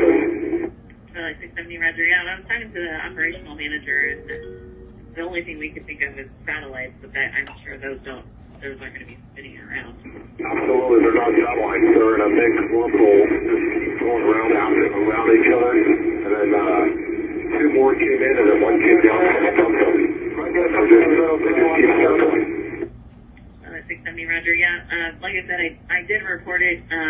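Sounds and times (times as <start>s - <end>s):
voice over crackly radio: 8.6s - 22.8s.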